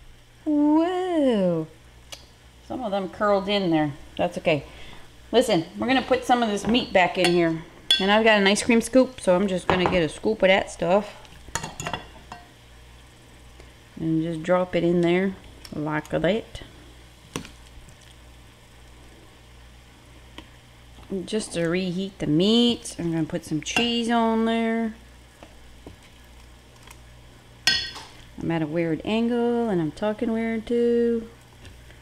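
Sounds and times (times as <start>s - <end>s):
low steady hum: 0.0s - 32.0s
metal scoop clinking on bowl: 27.7s - 28.1s.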